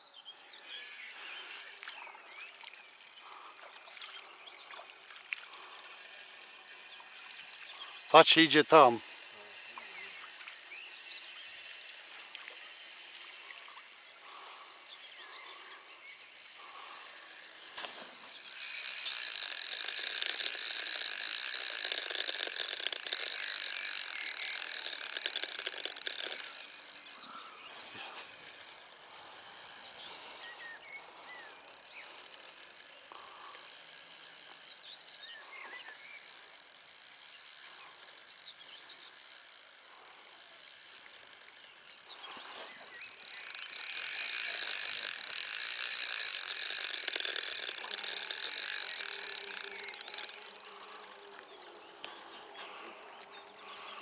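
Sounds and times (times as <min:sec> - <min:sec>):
fishing reel ticking rapidly: 0:00.8 - 0:54.0.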